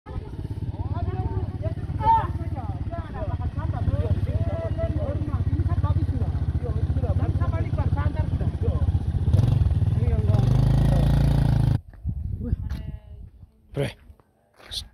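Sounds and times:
motorcycle engine idling: 0:00.1 - 0:11.8.

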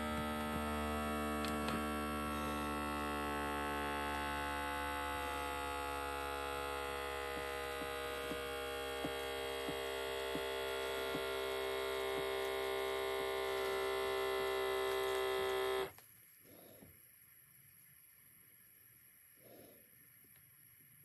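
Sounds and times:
electric air pump running: 0:00.0 - 0:16.0.

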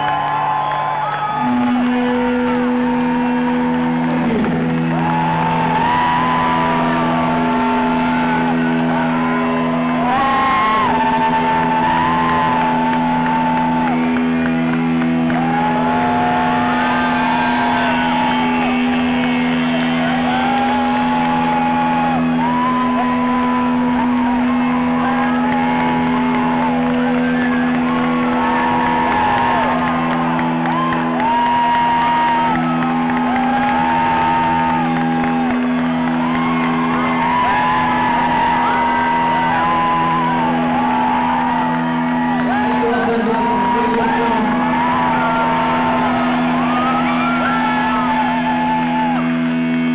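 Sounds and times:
crowd shouting and whooping: 0:00.0 - 0:49.9.

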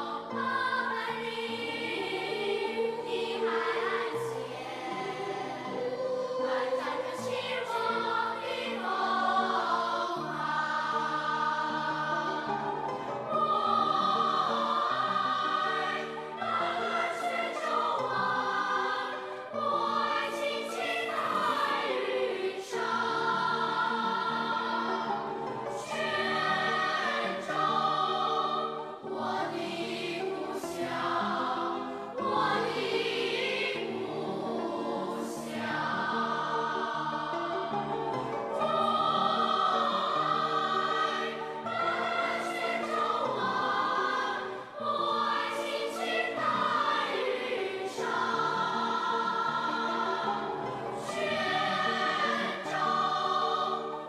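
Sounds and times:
children's choir singing: 0:00.0 - 0:54.0
musical accompaniment: 0:00.0 - 0:54.0.

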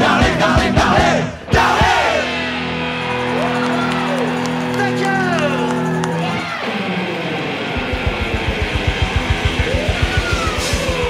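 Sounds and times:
rock band held chord: 0:00.0 - 0:11.0
fast low pulse: 0:07.1 - 0:11.0.

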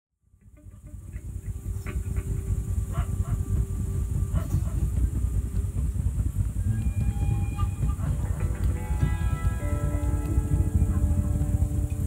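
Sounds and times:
faint steady hum: 0:00.2 - 0:12.0
low rumbling drone: 0:00.2 - 0:12.0
sustained higher tones: 0:00.4 - 0:12.0.

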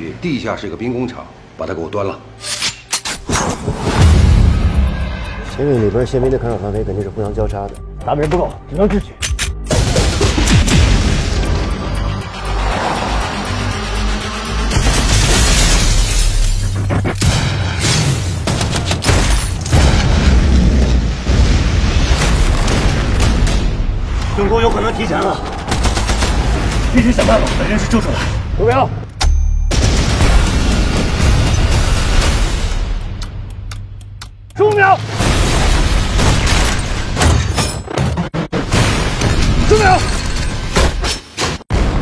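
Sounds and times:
heavy explosion booms: 0:09.7 - 0:11.7, 0:19.7 - 0:28.0
deep rumble: 0:19.8 - 0:28.4.

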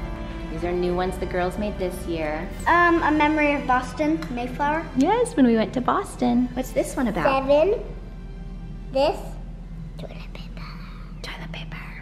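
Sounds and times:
low steady hum: 0:00.0 - 0:12.0
child whispering: 0:10.0 - 0:12.0.

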